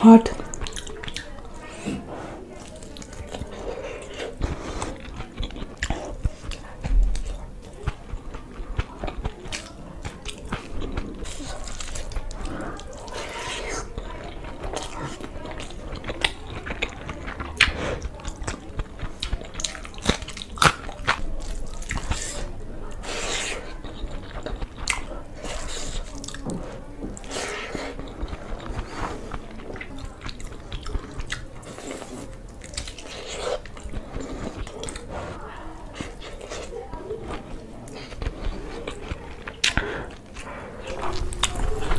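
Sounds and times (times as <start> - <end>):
chewing with wet mouth sounds: 0.2 - 41.9.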